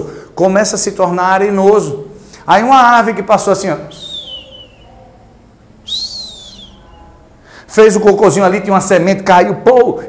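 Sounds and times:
man whistling descending notes: 3.9 - 4.9, 5.9 - 7.1.

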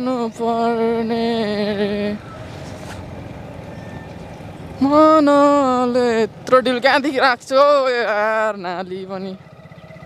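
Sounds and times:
motorcycle wind and engine noise: 0.0 - 10.0.

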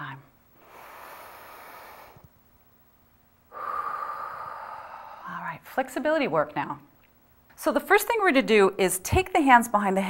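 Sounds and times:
woman breathing deeply: 0.6 - 2.3, 3.5 - 5.4.

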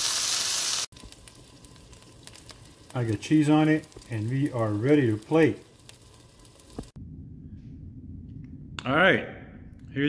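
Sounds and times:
patty sizzling in skillet: 0.0 - 7.0
low room hum: 5.8 - 10.0.

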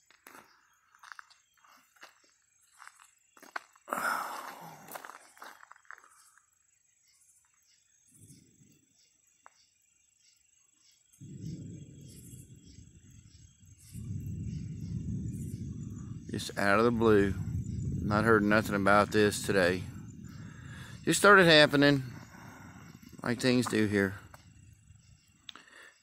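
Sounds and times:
night insects chirping: 0.0 - 26.0
low rumble: 11.2 - 25.4.

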